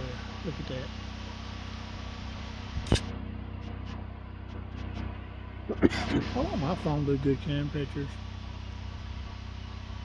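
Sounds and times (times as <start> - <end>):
low mechanical hum: 0.0 - 10.0
sharp click: 2.8 - 4.0.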